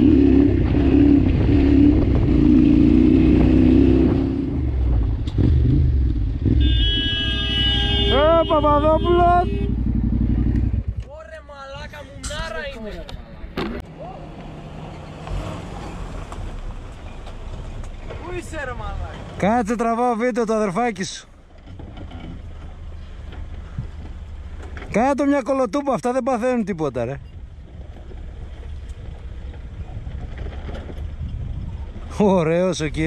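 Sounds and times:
off-road engine rumble: 0:00.0 - 0:33.0.

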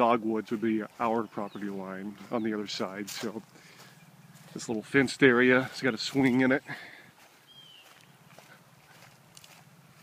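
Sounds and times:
bird chirp: 0:00.0 - 0:10.0.

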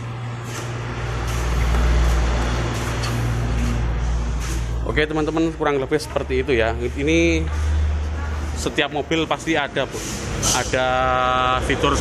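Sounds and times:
vehicle engine running: 0:00.0 - 0:12.0.

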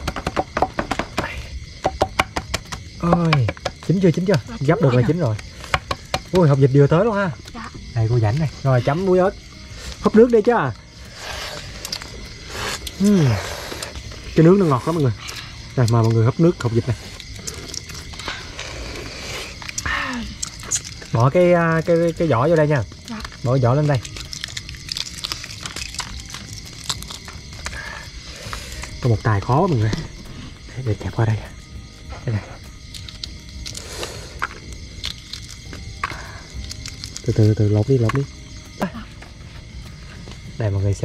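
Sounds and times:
eggshell cracking: 0:19.4 - 0:29.0, 0:32.8 - 0:38.3.

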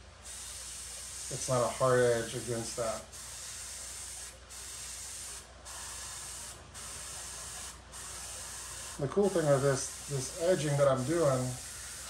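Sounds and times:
paint sprayer hissing: 0:00.0 - 0:12.0.

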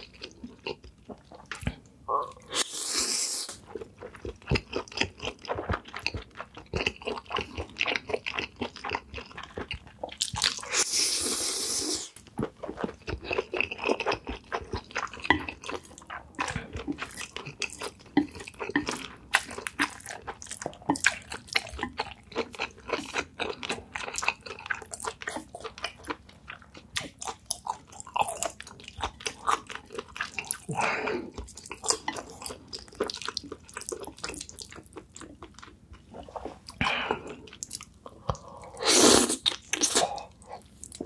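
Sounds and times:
wet chewing and lip-smacking: 0:03.5 - 0:10.9, 0:12.1 - 0:38.6
slurping noodles: 0:38.7 - 0:40.2.

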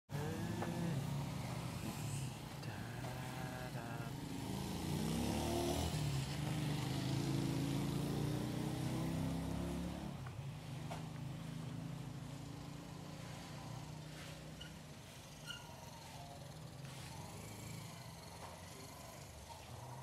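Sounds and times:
vehicle engines running: 0:00.1 - 0:20.0.

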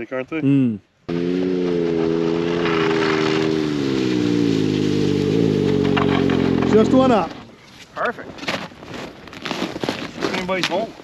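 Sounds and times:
snowmobile engine running: 0:01.1 - 0:07.3.

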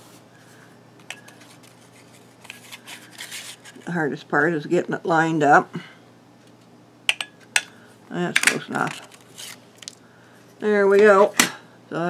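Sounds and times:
paper scraping against plastic: 0:01.2 - 0:03.9, 0:08.8 - 0:09.6.

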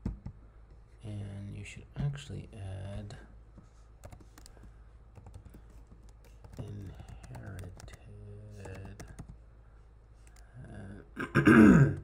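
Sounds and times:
typing on a computer keyboard: 0:04.0 - 0:09.4.

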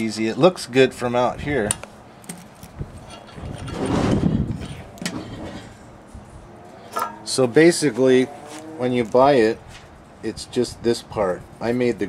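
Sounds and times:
vehicle passing: 0:06.1 - 0:09.6.

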